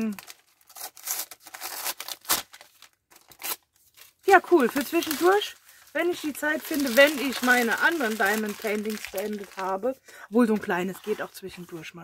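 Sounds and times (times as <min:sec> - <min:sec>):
wrapping paper tearing and crinkling: 0:00.0 - 0:10.0.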